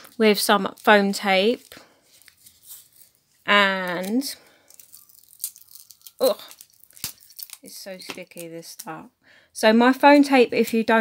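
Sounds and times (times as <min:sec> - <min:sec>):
foam tape being peeled: 0:00.7 - 0:03.3, 0:04.0 - 0:08.8.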